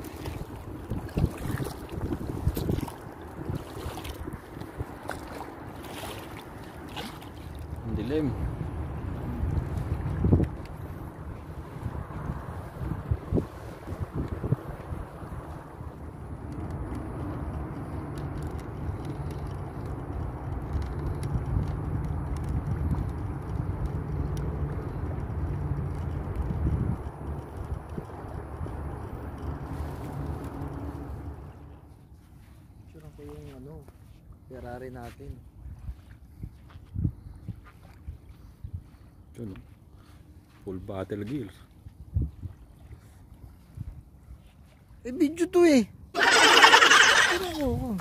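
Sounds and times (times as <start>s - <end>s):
wind buffeting microphone: 0.0s - 32.6s, 34.6s - 39.2s, 41.2s - 48.0s.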